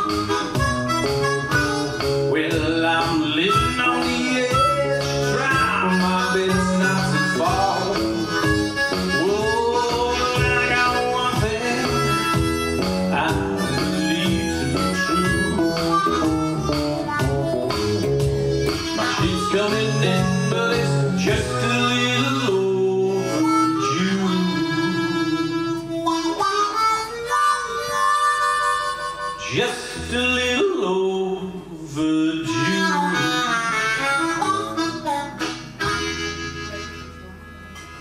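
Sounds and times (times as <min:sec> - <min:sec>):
blues harmonica solo: 0:00.0 - 0:38.0
electric guitar rhythm: 0:00.0 - 0:38.0.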